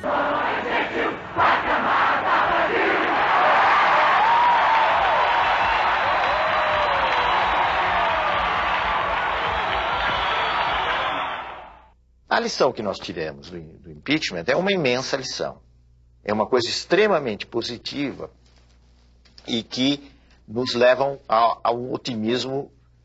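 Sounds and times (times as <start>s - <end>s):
crowd shouting and cheering: 0.0s - 11.9s.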